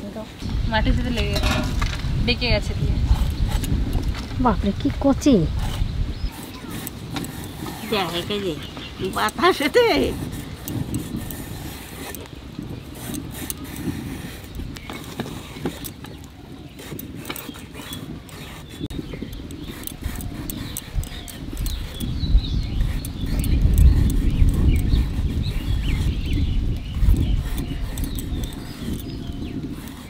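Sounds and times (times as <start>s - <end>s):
blade cutting clicks and scrapes: 5.2s - 30.0s.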